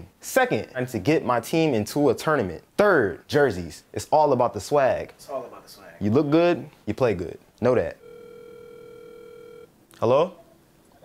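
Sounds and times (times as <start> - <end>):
telephone ringback tone: 8.0 - 9.7.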